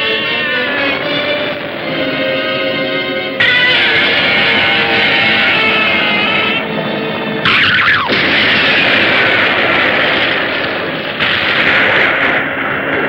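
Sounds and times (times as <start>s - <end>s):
dramatic music: 0.0s - 12.4s
loud explosion: 7.4s - 13.0s.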